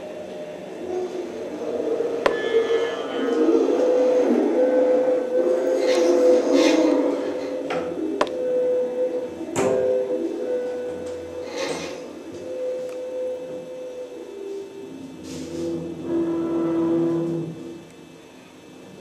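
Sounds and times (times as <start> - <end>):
scratchy bowing noise: 0.8 - 9.3, 15.2 - 17.8.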